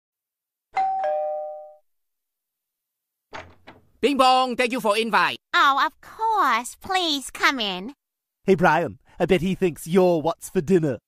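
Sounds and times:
two-tone doorbell chime: 0.8s - 1.8s.

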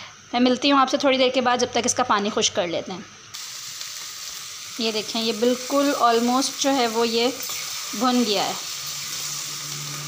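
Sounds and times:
food sizzling in a pan: 3.3s - 10.0s.

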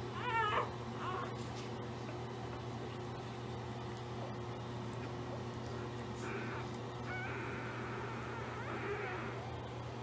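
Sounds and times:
puppy squealing cry: 0.1s - 1.4s, 6.2s - 9.5s.

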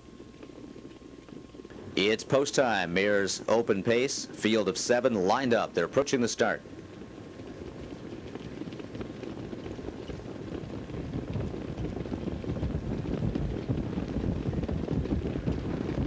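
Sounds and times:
rumble of many hoofbeats: 0.0s - 16.0s.

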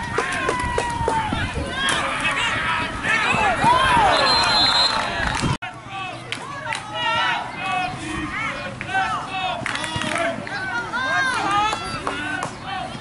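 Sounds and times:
outdoor crowd hubbub: 0.0s - 13.0s
voices shouting: 0.0s - 13.0s.

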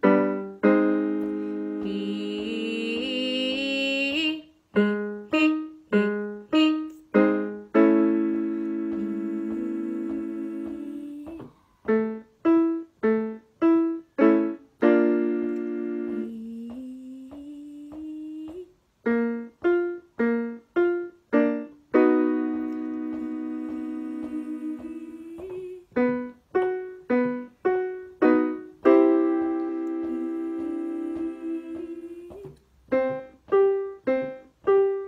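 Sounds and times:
electric keyboard notes: 0.0s - 3.6s, 4.8s - 16.7s, 17.3s - 35.0s.

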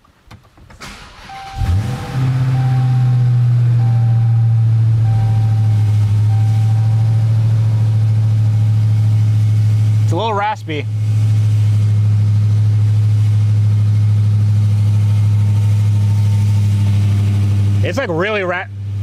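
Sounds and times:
car engine starting and idling: 0.4s - 19.0s.

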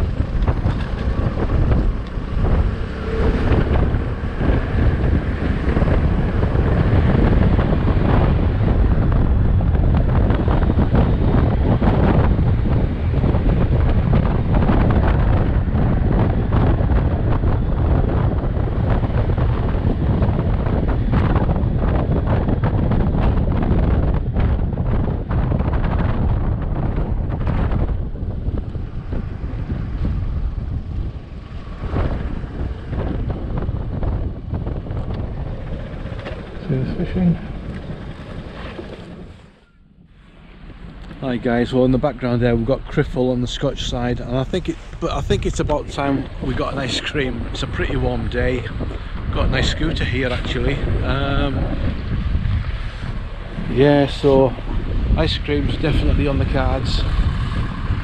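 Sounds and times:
wind buffeting microphone: 0.0s - 58.0s
scooter engine running: 28.4s - 39.6s.

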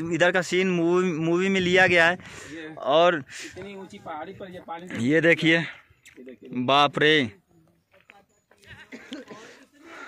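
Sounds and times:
faint scattered sounds: 1.6s - 10.0s.

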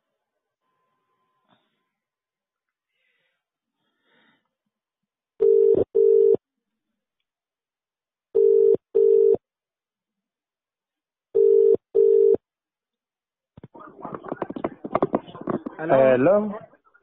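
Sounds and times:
telephone ringback tone: 5.4s - 6.4s, 8.4s - 9.4s, 11.4s - 12.4s.

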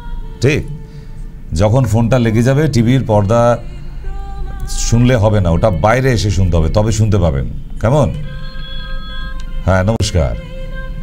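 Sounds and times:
man's voice: 0.4s - 0.9s, 1.5s - 3.8s, 4.6s - 8.4s, 9.6s - 10.6s.

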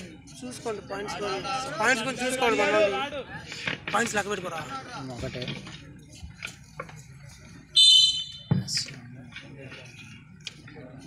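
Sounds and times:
referee's whistle blast: 7.8s - 8.5s.

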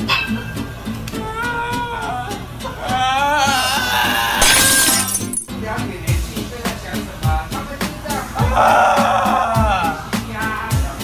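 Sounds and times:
background music: 0.0s - 11.0s
person screaming: 1.1s - 5.1s, 8.4s - 10.0s.

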